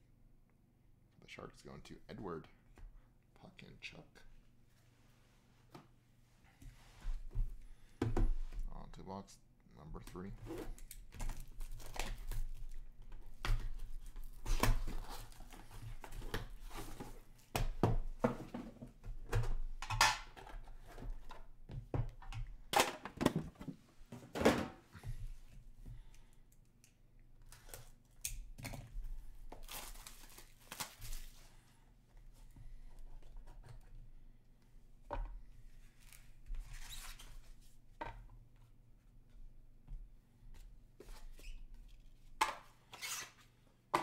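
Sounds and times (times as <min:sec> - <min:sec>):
plastic wrap tearing and crinkling: 0:10.8 - 0:12.8, 0:29.6 - 0:31.4.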